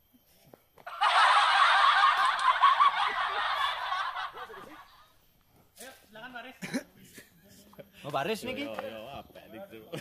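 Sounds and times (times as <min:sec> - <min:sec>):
loud laughter: 0:00.9 - 0:05.2.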